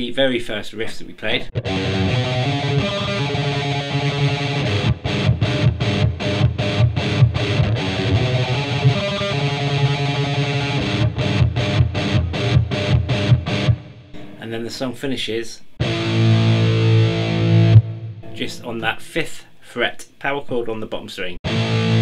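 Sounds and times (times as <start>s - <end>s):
distorted electric guitar riff: 1.5s - 14.6s, 15.8s - 18.9s, 21.4s - 22.0s.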